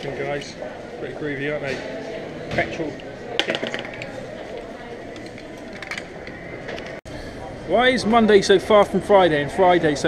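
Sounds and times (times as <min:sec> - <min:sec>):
indistinct voices: 0:00.0 - 0:10.0
shop background hum: 0:00.0 - 0:10.0.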